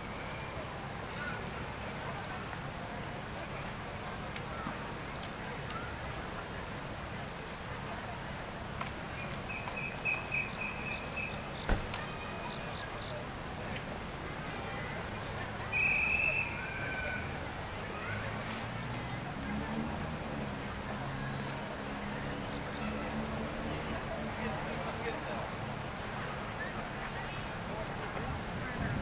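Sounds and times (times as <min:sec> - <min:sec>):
insect trills: 0:00.0 - 0:29.0
insects high-pitched drone: 0:00.0 - 0:29.0.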